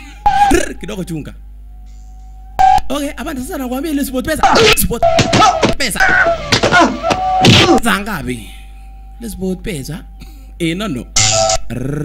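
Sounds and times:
background music tone: 0:00.0 - 0:05.6
heavy punch landing: 0:04.6 - 0:07.9.

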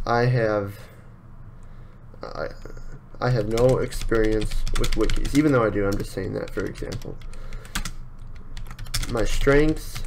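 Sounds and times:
computer keyboard typing: 0:02.5 - 0:10.0.

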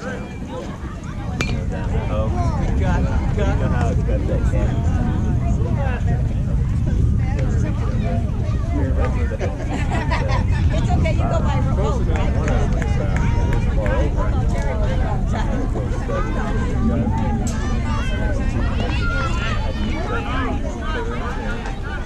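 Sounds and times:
people chattering and calling out: 0:00.0 - 0:22.0
steady low rumble: 0:00.0 - 0:22.0.

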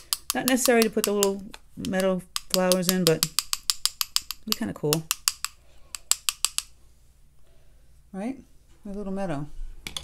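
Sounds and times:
paintbrush tapping on handle: 0:00.0 - 0:06.7.

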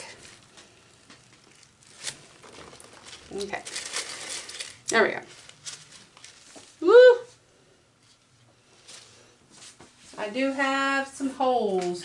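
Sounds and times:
soft rustle: 0:00.0 - 0:07.4, 0:08.0 - 0:10.8
gloved hand handling canvas: 0:00.1 - 0:06.8.

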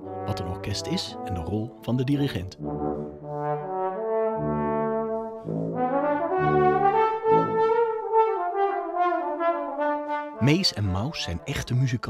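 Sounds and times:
low tuba notes: 0:00.0 - 0:12.0.

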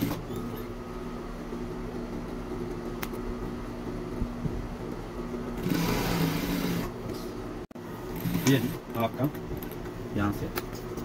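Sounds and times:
sewing machine running: 0:05.6 - 0:07.0, 0:08.1 - 0:08.8.

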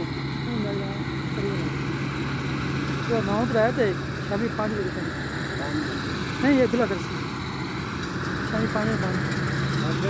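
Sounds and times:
combine harvester running: 0:00.0 - 0:10.0.

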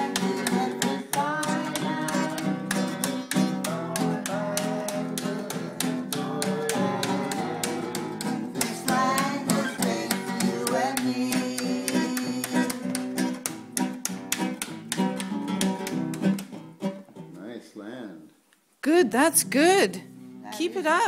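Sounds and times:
person singing: 0:00.0 - 0:13.4
acoustic guitar strumming: 0:00.0 - 0:17.4, 0:18.9 - 0:21.0.

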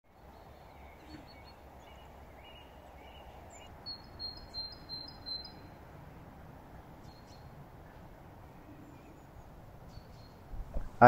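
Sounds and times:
small birds chirping: 0:00.1 - 0:11.0.

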